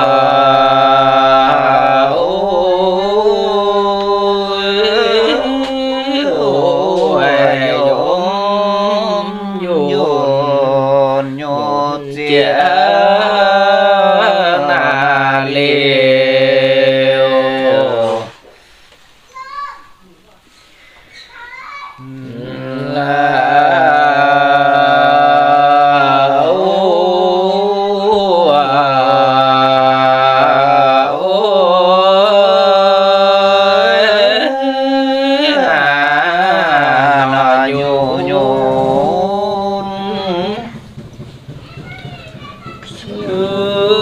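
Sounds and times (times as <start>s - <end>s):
person singing a long note: 0.0s - 18.4s, 22.0s - 41.0s, 42.9s - 44.0s.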